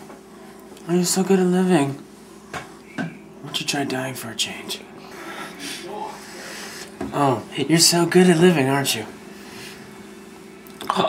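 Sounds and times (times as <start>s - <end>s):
low room hiss: 0.0s - 11.0s
man breathing: 5.0s - 7.0s.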